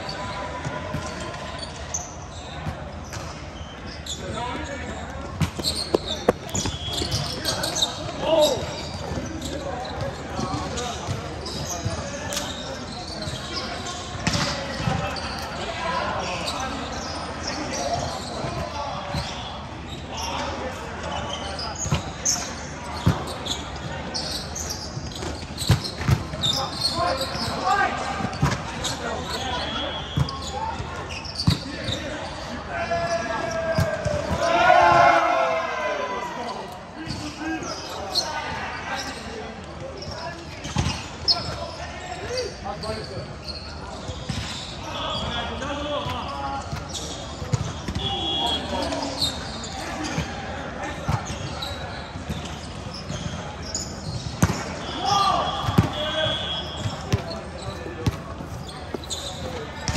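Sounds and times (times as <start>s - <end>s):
shoes squeaking on floor: 0.0s - 35.1s, 36.4s - 59.9s
volleyball thuds: 5.4s - 7.3s
players shouting: 32.7s - 36.7s, 47.8s - 50.2s, 54.7s - 58.2s.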